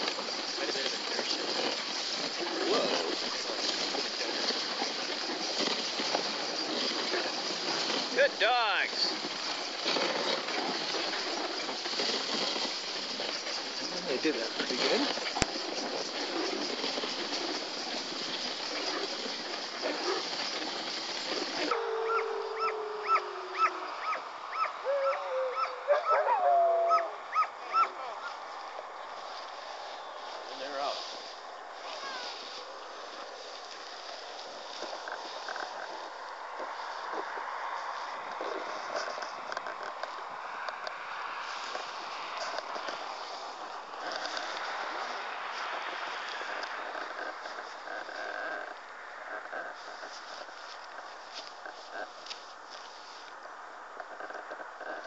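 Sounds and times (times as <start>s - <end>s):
sled dogs yipping: 0.0s - 28.4s
sled rushing over snow: 0.0s - 53.6s
dogs whining: 21.6s - 28.0s.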